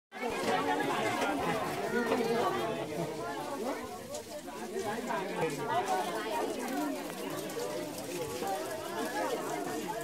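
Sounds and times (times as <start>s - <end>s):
crowd babble: 0.1s - 10.0s.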